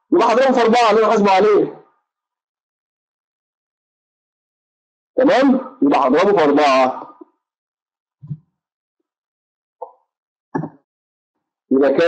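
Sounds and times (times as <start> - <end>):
man's voice: 0.1 - 1.8, 5.2 - 7.2, 11.7 - 12.0.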